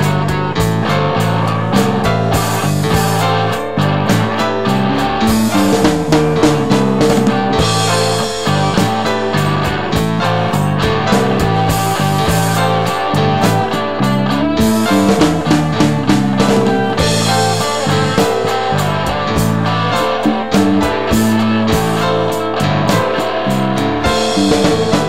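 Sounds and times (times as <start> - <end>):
bass guitar: 0.0 - 25.0
drum kit beat: 0.0 - 25.0
electric guitars: 0.0 - 25.0.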